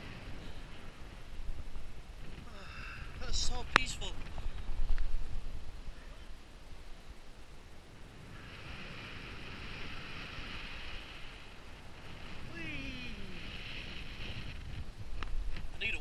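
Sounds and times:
quiet outdoor hiss: 0.0 - 16.0.

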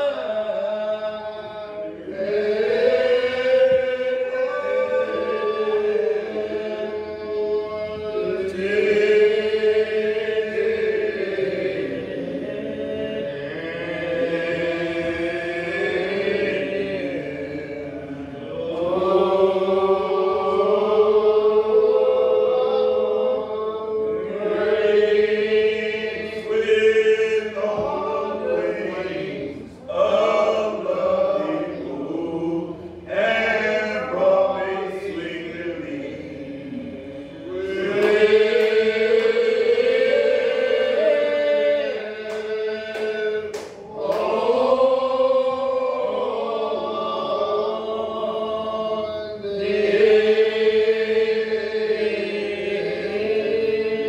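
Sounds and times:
group singing a hymn: 0.0 - 54.0.

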